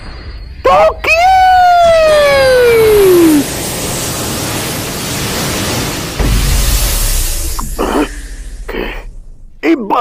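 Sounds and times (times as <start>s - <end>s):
steady rushing noise: 1.7s - 9.6s.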